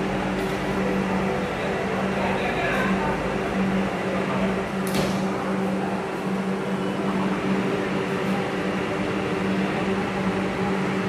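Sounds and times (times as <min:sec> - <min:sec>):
low hum inside electric train: 0:00.0 - 0:11.0.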